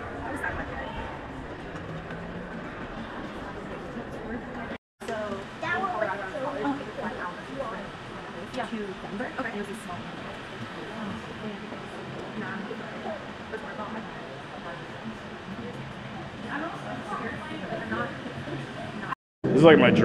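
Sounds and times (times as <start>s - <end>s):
distant people talking: 0.0s - 20.0s.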